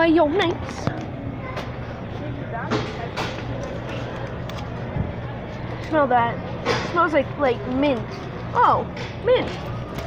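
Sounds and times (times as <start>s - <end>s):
faint distant voices: 0.1s - 10.0s.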